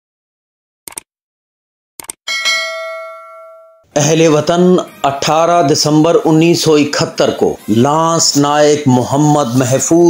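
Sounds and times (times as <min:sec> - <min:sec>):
quick clicks: 0:00.9 - 0:01.1, 0:02.0 - 0:02.2
bell ding ringing: 0:02.3 - 0:03.9.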